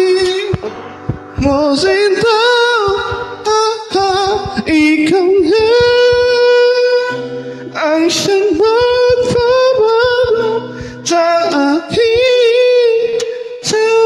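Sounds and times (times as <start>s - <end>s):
high singing voice: 0.0s - 14.0s.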